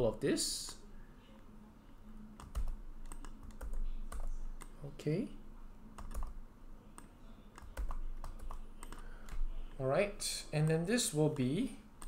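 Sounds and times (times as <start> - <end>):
computer keyboard typing: 2.4 - 4.8, 6.0 - 9.8.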